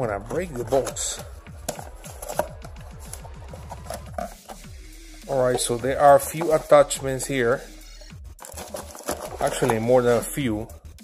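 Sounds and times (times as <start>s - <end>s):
light paper rustles and taps: 8.4s - 9.9s.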